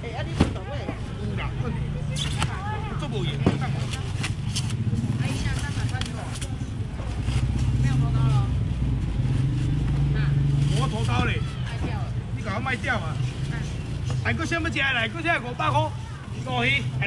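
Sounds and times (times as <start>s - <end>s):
market crowd chatter: 0.0s - 17.0s.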